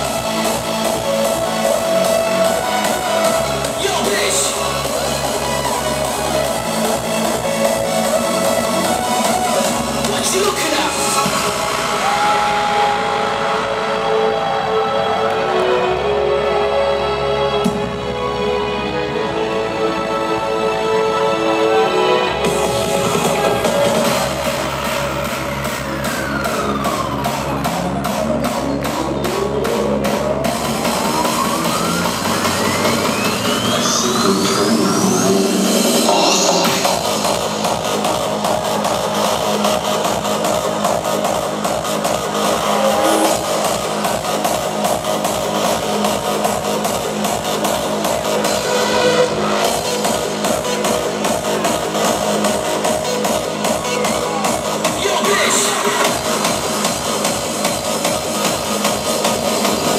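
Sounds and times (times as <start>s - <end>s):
hardstyle dance music: 0.0s - 59.9s
rising synth sweep: 22.5s - 54.9s
steady kick-drum beat: 22.5s - 59.9s.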